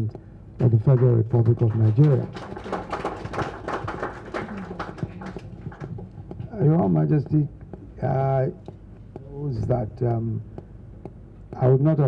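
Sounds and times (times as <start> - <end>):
people clapping: 0.6 - 6.4.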